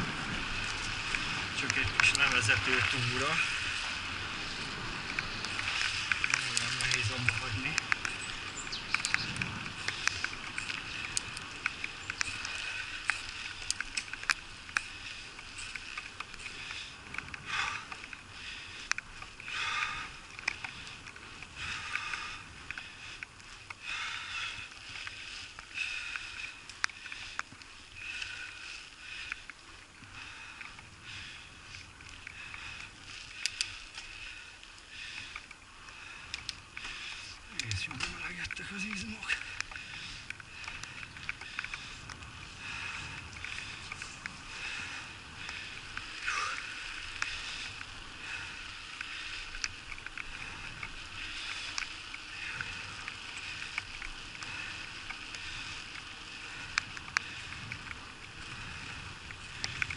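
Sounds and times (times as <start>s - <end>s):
tyres hissing on wet asphalt: 0.0s - 59.8s
raindrops ticking on camera: 0.0s - 59.9s
person breathing: 14.8s - 37.7s, 39.2s - 59.9s.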